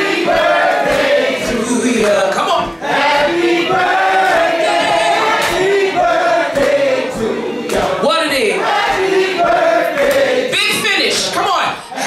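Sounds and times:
voices singing together: 0:00.0 - 0:11.3.

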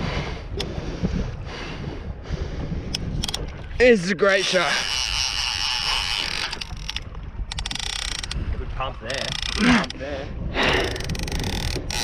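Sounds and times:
fishing reel buzzing: 0:04.2 - 0:08.4, 0:09.1 - 0:10.0, 0:10.6 - 0:12.0.

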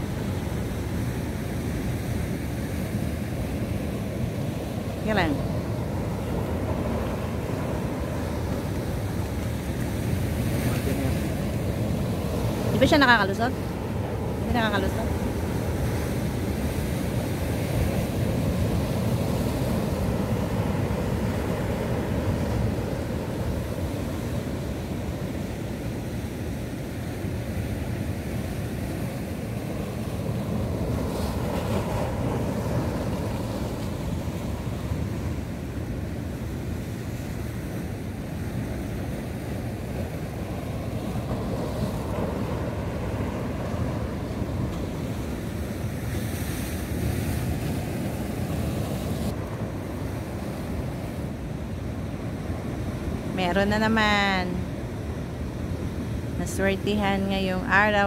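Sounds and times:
surf breaking on rocks: 0:03.2 - 0:25.6.

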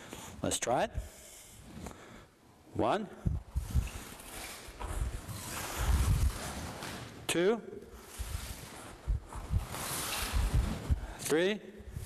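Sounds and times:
clothing rustling: 0:03.4 - 0:07.2, 0:07.9 - 0:11.2
bare feet sliding on mat: 0:08.0 - 0:11.0.

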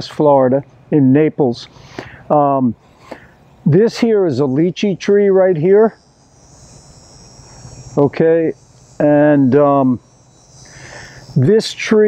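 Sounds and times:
insects trilling: 0:01.0 - 0:12.0.

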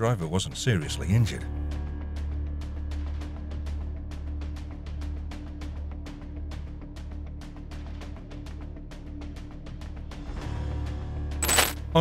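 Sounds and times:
background music drone: 0:00.0 - 0:11.4.

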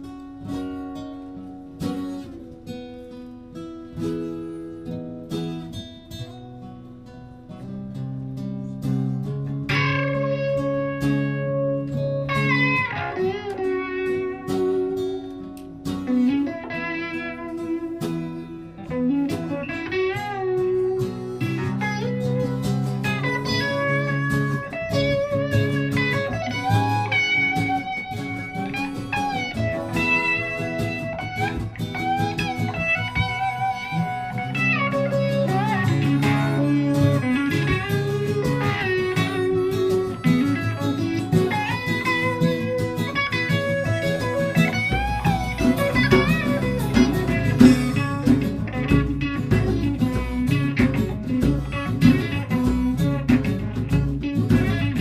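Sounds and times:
guitars playing blues: 0:00.0 - 0:55.0
harmonica lead with bending notes: 0:09.2 - 0:55.0.

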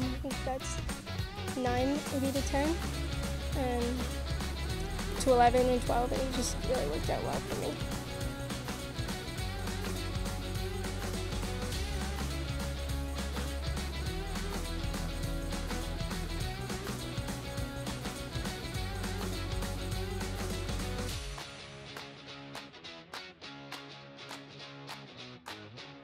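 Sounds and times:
guitar-led rock music: 0:00.0 - 0:26.0.

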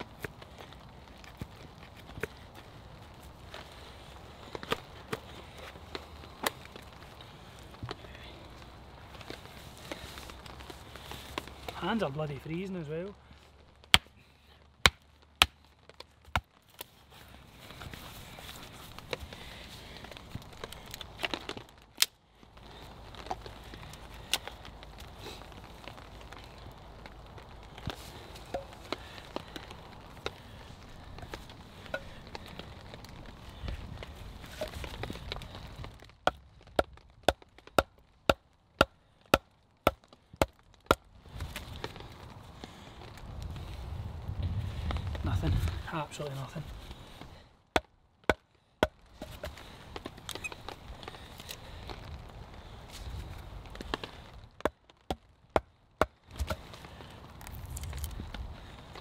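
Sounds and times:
rustling: 0:00.0 - 0:38.2
knife chopping wood: 0:55.1 - 0:56.6.

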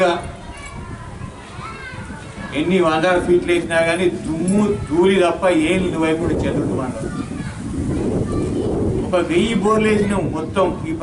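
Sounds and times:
faint background voices: 0:00.0 - 0:11.0
man speaking over microphone: 0:02.5 - 0:07.1, 0:09.1 - 0:11.0.

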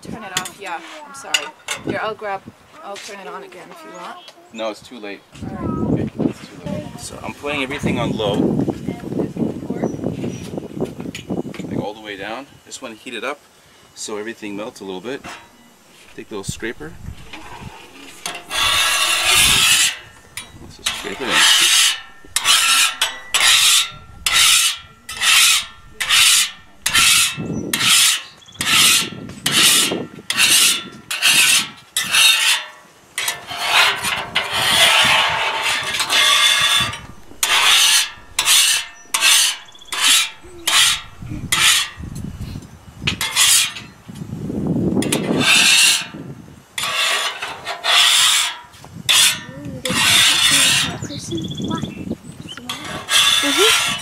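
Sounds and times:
metal scraper on steel griddle: 0:15.2 - 0:42.2, 0:43.1 - 0:43.9, 0:45.0 - 0:46.2, 0:46.8 - 0:51.1, 0:52.7 - 0:54.0.

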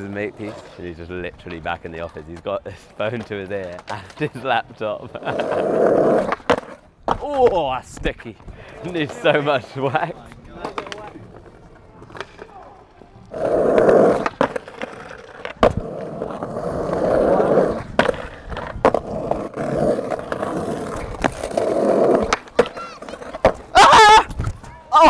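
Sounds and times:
skateboard sliding on stone ledge: 0:00.0 - 0:25.0
skateboard wheels rolling: 0:00.0 - 0:25.0
skateboard clacking on stone: 0:10.2 - 0:12.7, 0:13.3 - 0:24.8.

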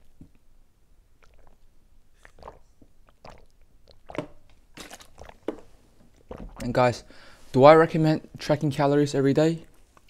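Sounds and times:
person gulping and swallowing: 0:01.0 - 0:07.1
lip smacks: 0:01.2 - 0:06.7.

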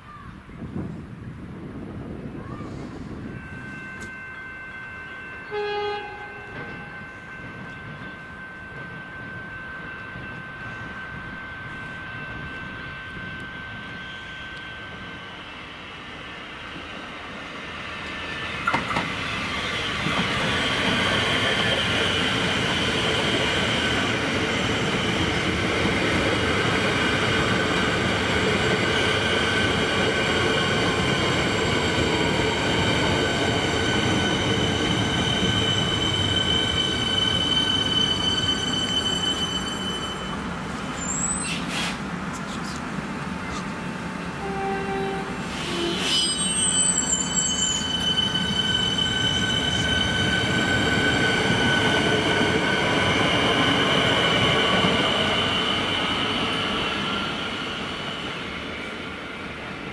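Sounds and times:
electric train slowing to a stop: 0:02.0 - 0:59.9
train wheel squeal: 0:02.4 - 0:15.7, 0:18.0 - 0:42.0, 0:44.4 - 0:59.6.

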